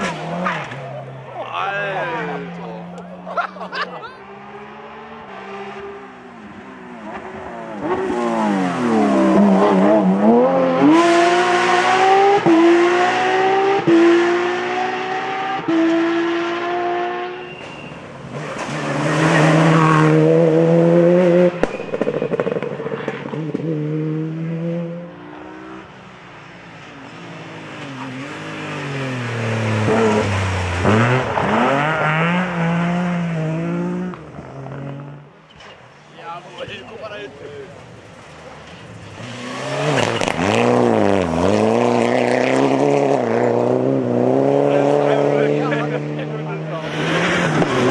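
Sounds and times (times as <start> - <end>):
rally car engines revving: 0.0 - 47.9.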